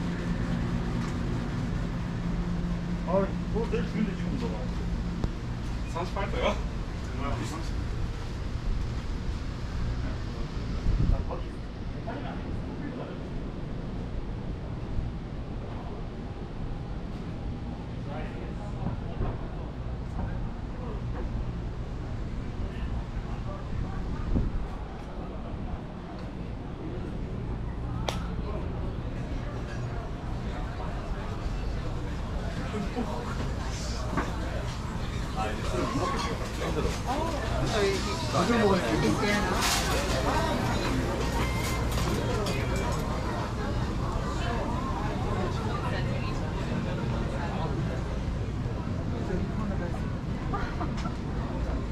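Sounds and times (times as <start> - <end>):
steady low hum: 0.0 - 51.9
indistinct voices: 22.7 - 51.9.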